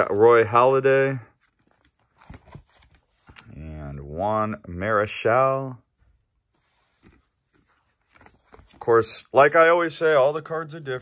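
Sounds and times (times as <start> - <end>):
person speaking: 0.0 - 1.5, 8.4 - 11.0
plastic binder page turning: 0.0 - 3.4, 7.0 - 9.1.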